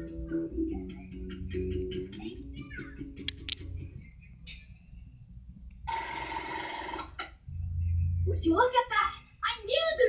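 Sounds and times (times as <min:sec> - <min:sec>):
low hum: 0:07.4 - 0:08.8
low rumble: 0:07.4 - 0:08.8.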